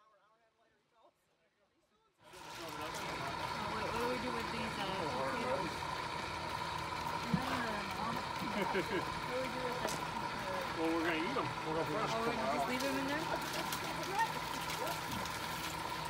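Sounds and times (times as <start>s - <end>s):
people talking: 0.0s - 5.8s, 7.2s - 15.3s
steady hum and hiss: 2.2s - 16.0s.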